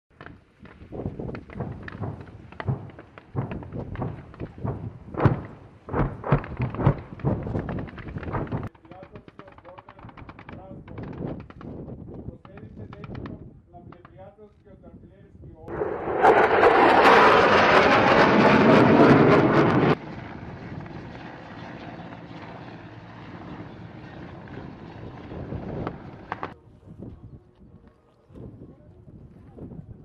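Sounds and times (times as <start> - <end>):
helicopter flying by: 15.7 - 26.6
loud aircraft roar: 15.7 - 26.6.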